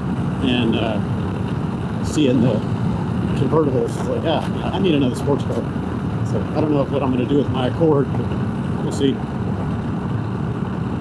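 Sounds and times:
motorcycle engine running: 0.0 - 11.0
road noise: 0.0 - 11.0.

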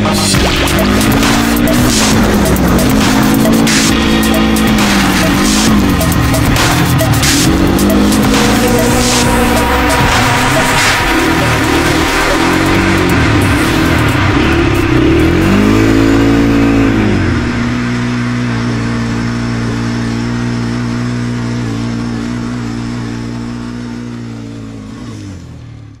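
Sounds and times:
quad bike engine revving: 0.0 - 26.0.

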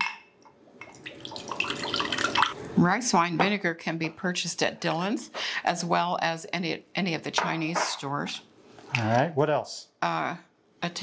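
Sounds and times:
liquid pouring into glass: 0.7 - 2.8.

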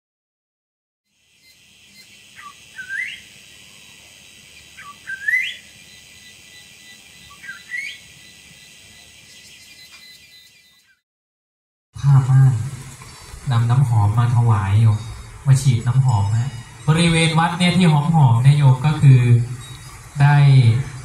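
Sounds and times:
steady high hiss: 1.1 - 10.6, 12.0 - 21.0
bird calling: 1.4 - 11.0, 12.0 - 21.0.

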